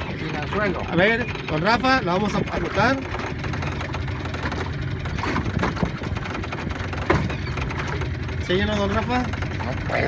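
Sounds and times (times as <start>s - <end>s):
outboard motor idling: 0.0s - 10.0s.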